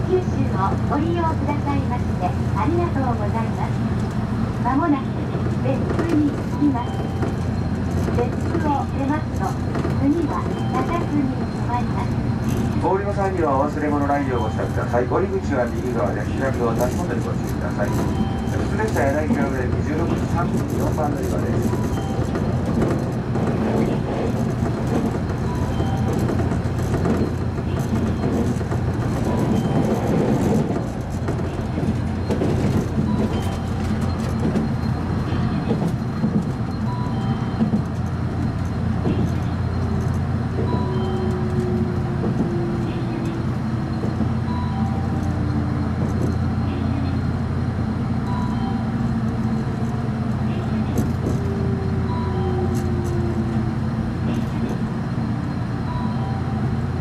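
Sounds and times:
electric train rumble and motor hum: 0:00.0 - 0:57.0
falling whines of train slowing: 0:05.1 - 0:57.0
faint short beeps: 0:55.4 - 0:56.6.

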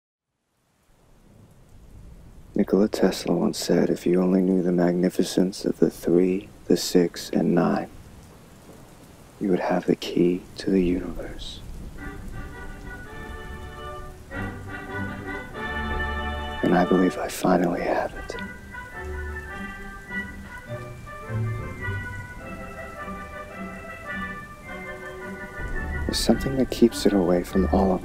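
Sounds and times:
steady rain: 0:00.3 - 0:28.0.

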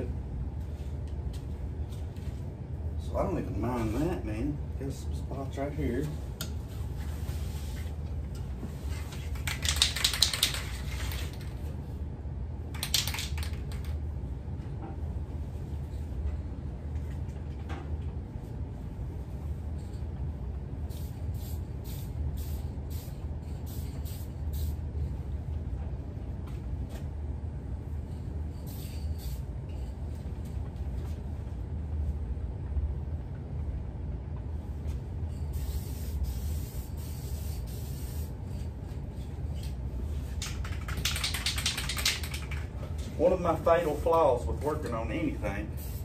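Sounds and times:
steady low hum: 0:00.0 - 0:46.0
aerosol spray can hissing: 0:20.9 - 0:24.8, 0:35.5 - 0:38.4
fast rattle: 0:40.4 - 0:42.7.

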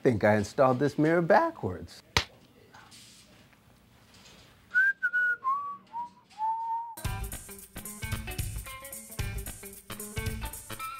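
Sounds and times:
person whistling falling tune: 0:04.7 - 0:07.0
music with guitar and beat: 0:07.0 - 0:10.9.

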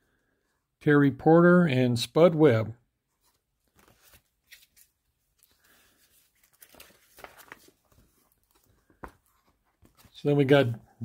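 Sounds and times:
plastic sleeve pages crinkling: 0:03.2 - 0:10.6.

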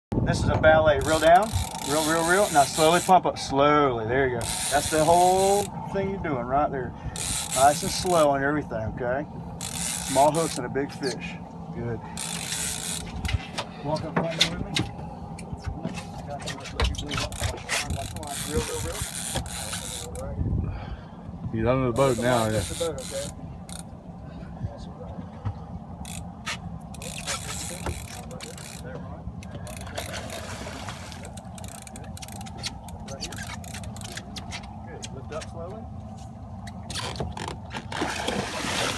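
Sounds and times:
steady low rumble: 0:00.1 - 0:38.9
fishing reel clicks: 0:01.0 - 0:03.1, 0:04.4 - 0:05.7
fishing reel hissing: 0:01.0 - 0:03.1, 0:04.4 - 0:05.7, 0:07.2 - 0:08.0
fishing tackle clicking and knocking: 0:31.2 - 0:35.2.

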